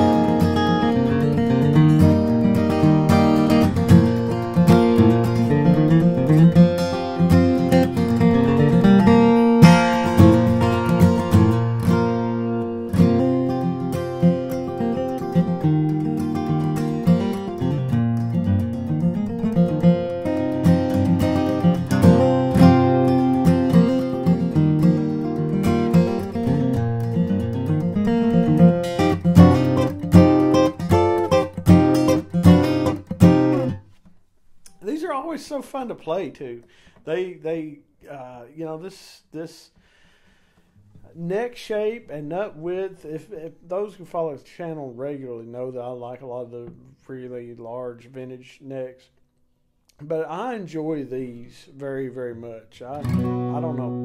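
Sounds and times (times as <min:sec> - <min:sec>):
acoustic guitar picking and strumming: 0:00.0 - 0:34.0, 0:52.8 - 0:54.0.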